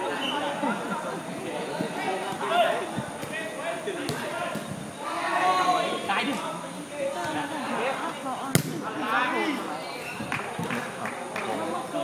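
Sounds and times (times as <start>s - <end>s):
players shouting: 0.0s - 12.0s
ball being kicked: 8.5s - 8.9s.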